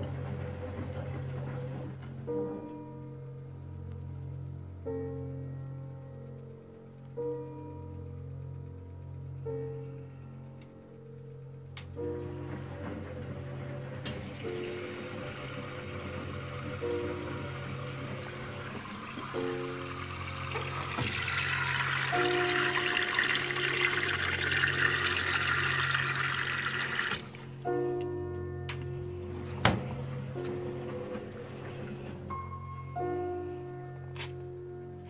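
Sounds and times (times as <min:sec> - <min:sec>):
water rushing into washing machine: 0:00.0 - 0:02.1, 0:12.2 - 0:27.7
background music: 0:00.0 - 0:35.0.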